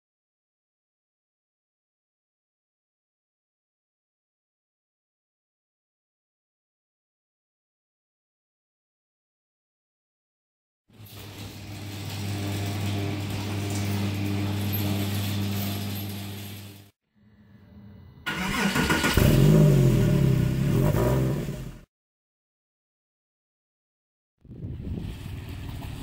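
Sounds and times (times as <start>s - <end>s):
car engine revving: 18.2s - 21.8s.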